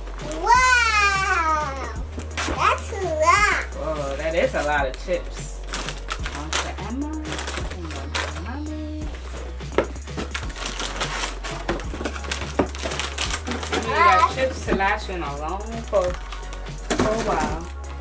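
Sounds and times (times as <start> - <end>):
plastic snack bags rustling: 3.8 - 9.5, 10.1 - 17.8.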